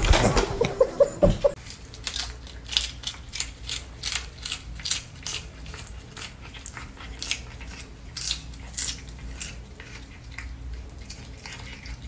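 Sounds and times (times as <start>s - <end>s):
cat crunching lettuce: 1.6s - 12.0s.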